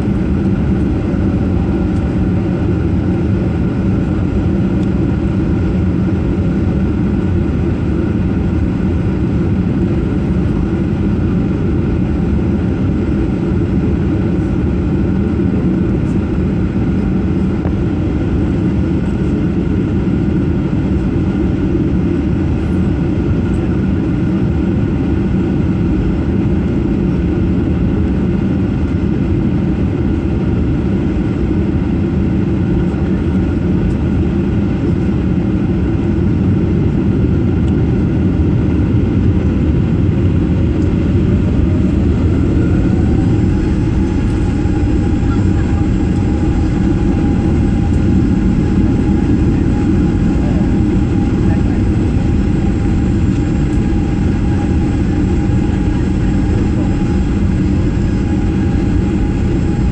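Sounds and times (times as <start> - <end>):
jet engines idling drone: 0.0 - 59.9.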